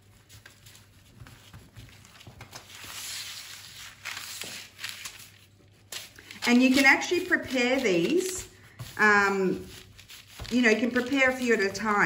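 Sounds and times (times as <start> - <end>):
baking paper rustling: 0.0 - 12.0.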